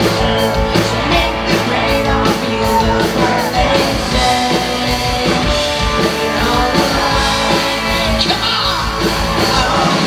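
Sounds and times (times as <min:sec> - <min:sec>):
live rock band playing: 0:00.0 - 0:10.0
man singing into microphone: 0:06.0 - 0:10.0.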